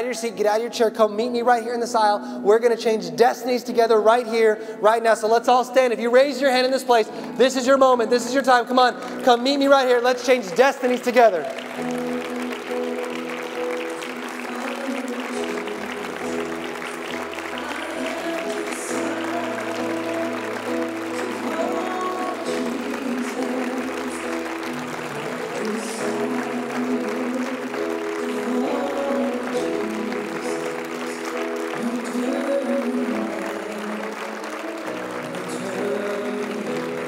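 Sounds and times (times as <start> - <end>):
slow worship music on keyboard: 0.0 - 37.0
congregation applauding: 5.6 - 37.0.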